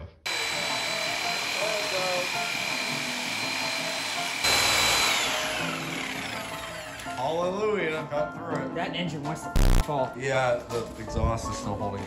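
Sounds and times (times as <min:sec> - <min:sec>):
reciprocating saw cutting metal: 0:00.3 - 0:07.2.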